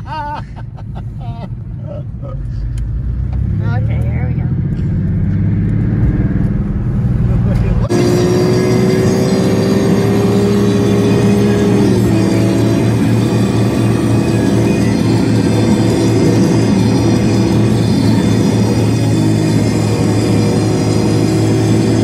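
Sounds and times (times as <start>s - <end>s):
car engine accelerating: 1.0s - 22.0s
drone with rising tone: 2.8s - 22.0s.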